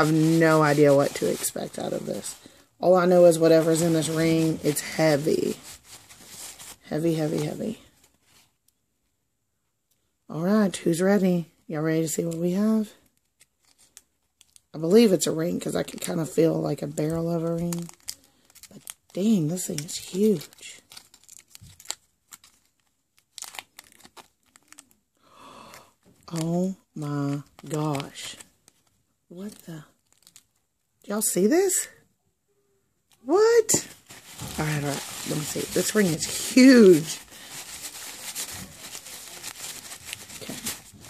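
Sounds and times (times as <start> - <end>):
foil crinkling and tearing: 0.0 - 7.9, 12.3 - 14.7, 15.6 - 25.0, 25.7 - 30.6, 33.3 - 41.0.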